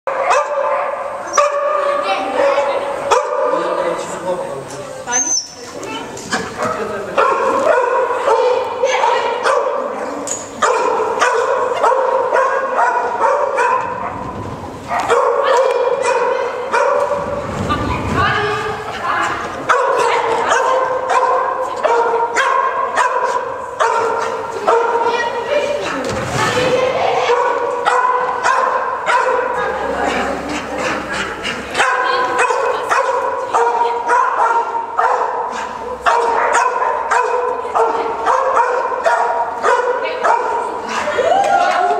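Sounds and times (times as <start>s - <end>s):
dog yapping: 31.8s - 41.2s.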